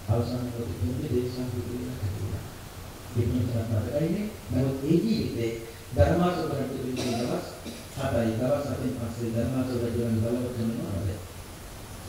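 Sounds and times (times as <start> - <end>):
man preaching into a microphone: 3.1 - 11.2.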